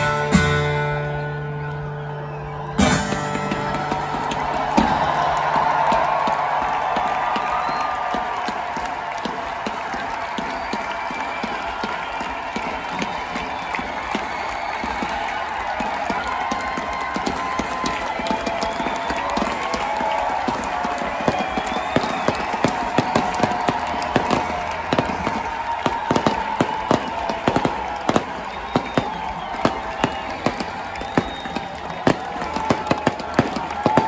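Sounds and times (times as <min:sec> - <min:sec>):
crowd cheering: 0:00.0 - 0:34.0
pyrotechnics cracking and popping: 0:19.2 - 0:34.0.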